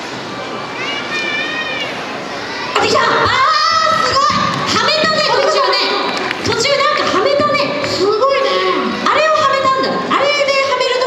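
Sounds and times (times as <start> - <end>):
crowd murmur: 0.0 - 11.0.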